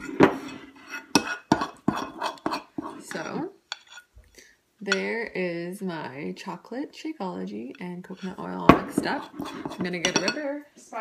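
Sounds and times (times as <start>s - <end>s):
spoon clinking against ceramic bowl: 8.2s - 10.5s.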